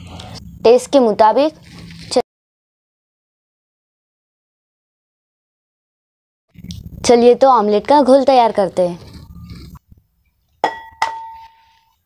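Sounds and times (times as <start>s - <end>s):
egg tapped on glass bowl: 10.6s - 11.5s.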